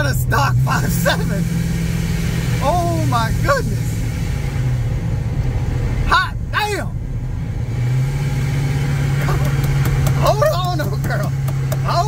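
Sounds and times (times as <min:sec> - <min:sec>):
engine drone inside cab: 0:00.0 - 0:12.0.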